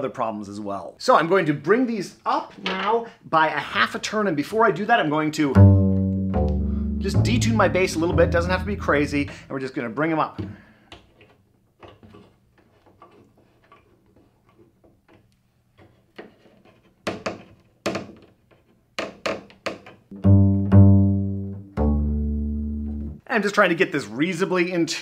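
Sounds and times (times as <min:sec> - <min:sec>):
plucked double bass notes: 0:05.5 - 0:09.5, 0:20.1 - 0:23.2.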